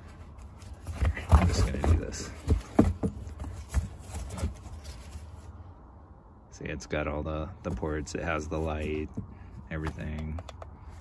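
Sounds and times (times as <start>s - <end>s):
fabric case rustling: 0.0s - 5.6s.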